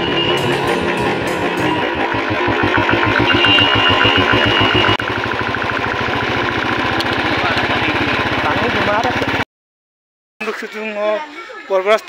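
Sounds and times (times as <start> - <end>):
motorcycle engine running: 0.0 - 9.5.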